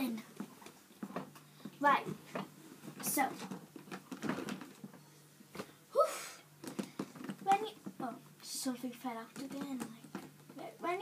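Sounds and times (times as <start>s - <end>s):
rustling handling noise: 0.2s - 5.8s, 6.6s - 8.2s.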